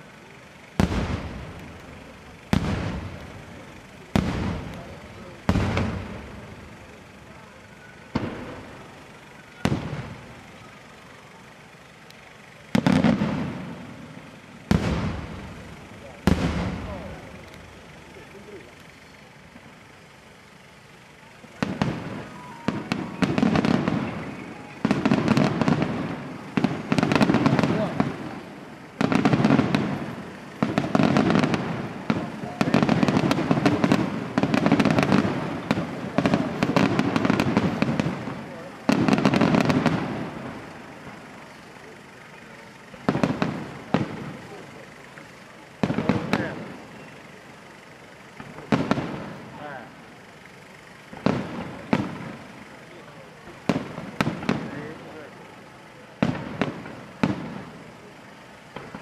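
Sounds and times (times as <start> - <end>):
fireworks bangs: 0.0 - 59.0
fireworks crackling: 0.0 - 59.0.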